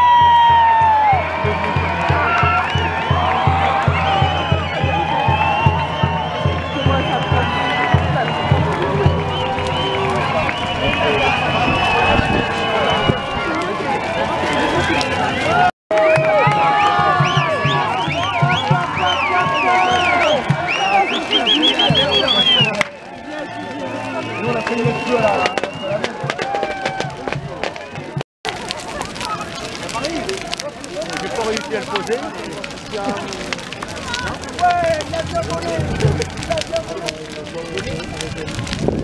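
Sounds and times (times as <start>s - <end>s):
crowd shouting: 0.0s - 38.8s
bonfire crackling and popping: 0.0s - 39.0s.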